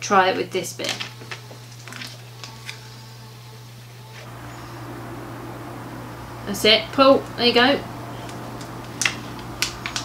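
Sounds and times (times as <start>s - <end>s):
steady low hum: 1.4s - 10.0s.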